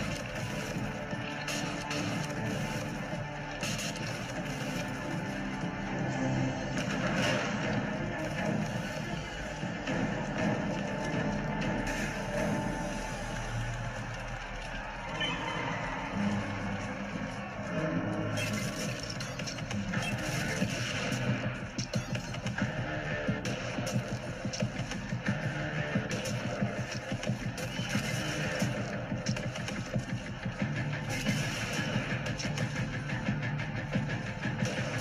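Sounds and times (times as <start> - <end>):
film soundtrack music: 0.0 - 35.0.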